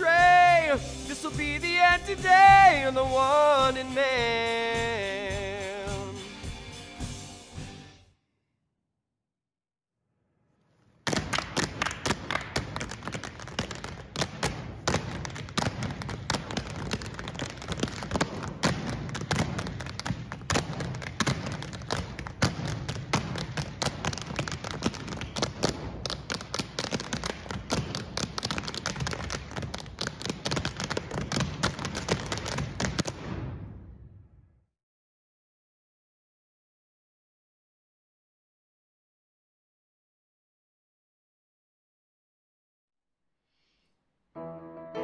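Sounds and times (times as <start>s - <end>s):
shoes tapping on wooden stage: 11.1s - 33.2s.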